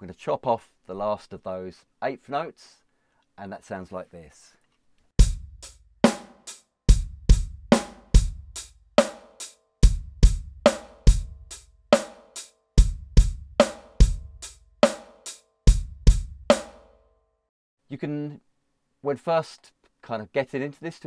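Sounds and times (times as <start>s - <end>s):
drum kit groove: 5.2s - 16.9s.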